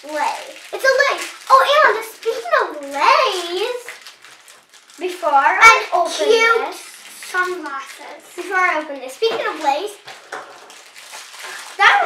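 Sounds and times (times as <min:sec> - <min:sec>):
child speaking: 0:00.0 - 0:04.0, 0:05.0 - 0:10.1, 0:11.6 - 0:12.0
toy packaging crinkling: 0:00.0 - 0:12.0.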